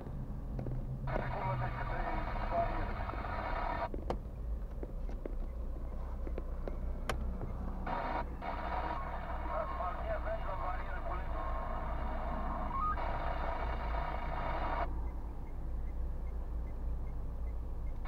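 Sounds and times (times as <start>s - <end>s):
low rumble inside car: 0.0s - 18.0s
tinny voice from car radio: 1.1s - 3.9s, 7.9s - 14.9s.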